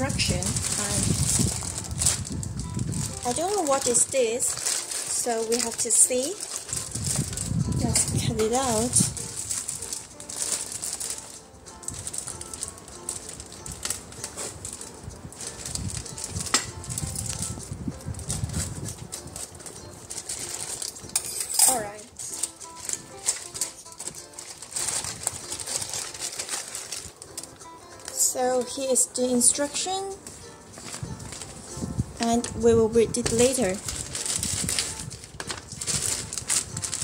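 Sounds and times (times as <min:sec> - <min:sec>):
plastic bag crinkling: 0:00.0 - 0:29.0, 0:30.2 - 0:37.0
soft background music: 0:00.0 - 0:37.0.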